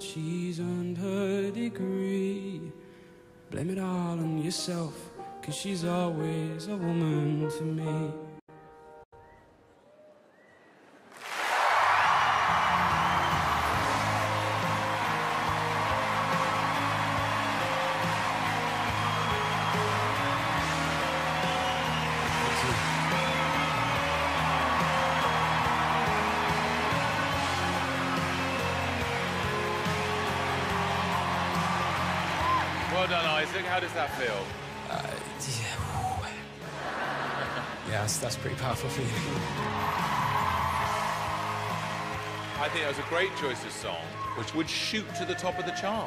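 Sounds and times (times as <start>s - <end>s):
audience cheering and applause: 9.8s - 46.0s
sustained music track: 12.4s - 46.0s.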